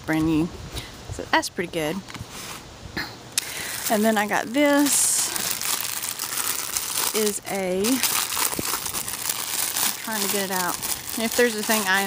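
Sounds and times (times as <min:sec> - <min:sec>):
plastic bag crinkling: 0:03.4 - 0:12.0.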